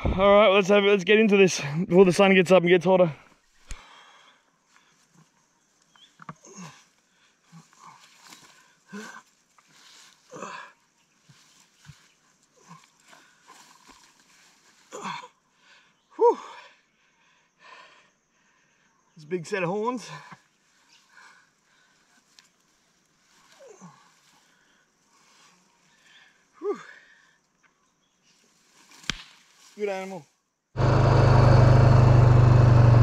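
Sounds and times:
rustling in dry grass: 6.9s - 15.0s, 21.7s - 26.1s, 28.2s - 30.3s
man grunting with effort: 10.3s - 10.7s, 14.9s - 15.3s, 16.2s - 16.6s.

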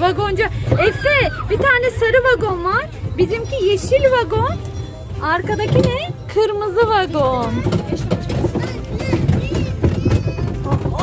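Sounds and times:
background music: 0.0s - 11.0s
wooden carriage rolling: 0.0s - 11.0s
rattling knocks: 3.8s - 11.0s.

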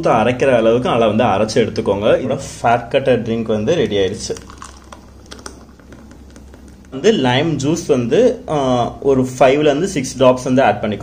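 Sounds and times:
thick juice pouring into glass: 4.0s - 7.0s.

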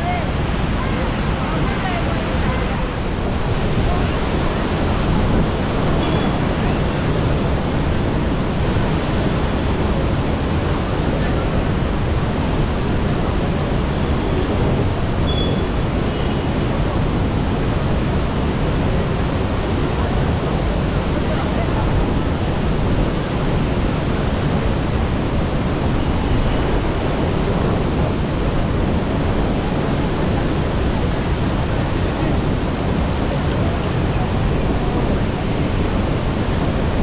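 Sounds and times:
waterfall rushing: 0.0s - 37.0s.

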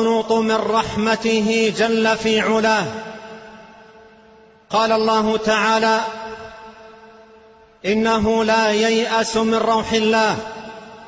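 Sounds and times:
man preaching with echo: 0.0s - 11.0s.

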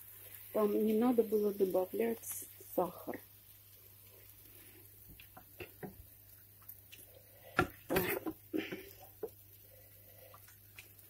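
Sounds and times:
utensils clicking and knocking on pans: 7.5s - 9.4s.

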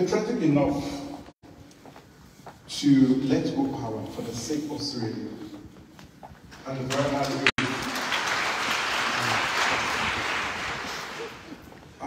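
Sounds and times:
audience applause: 6.9s - 11.7s.

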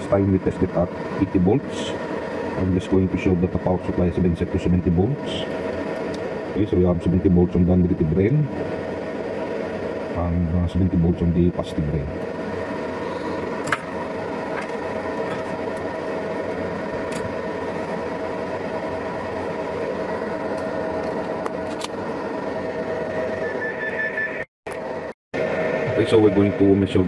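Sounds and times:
cooling fan whirring: 0.0s - 22.3s, 25.4s - 27.0s
faint whining tones: 0.0s - 27.0s.

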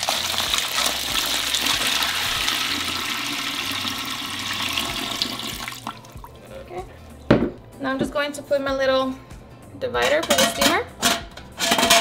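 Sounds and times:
water pouring into a metal pot: 0.0s - 6.4s.

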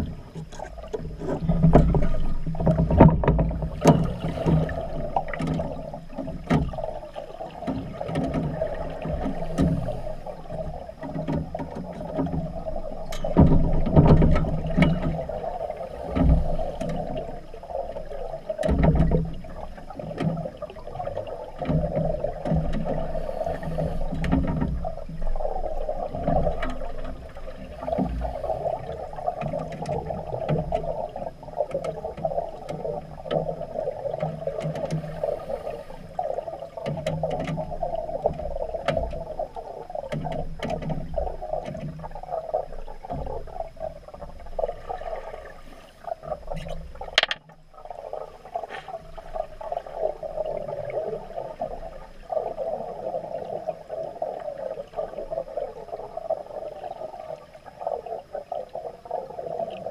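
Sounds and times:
exhaust bubbles surging: 0.0s - 37.0s, 37.6s - 59.9s
muffled underwater hum: 0.0s - 59.9s
regulator breathing: 22.9s - 24.7s, 34.9s - 36.4s, 48.6s - 49.3s
sharp clicks: 47.2s - 47.5s.

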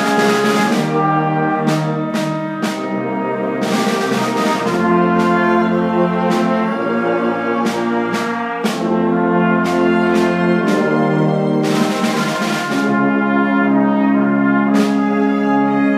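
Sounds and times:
instrumental ensemble playing chords: 0.0s - 15.9s.

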